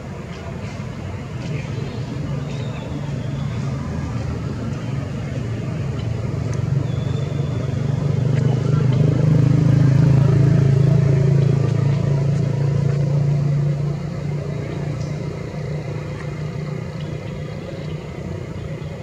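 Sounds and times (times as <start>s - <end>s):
motor engine running: 3.0s - 19.0s.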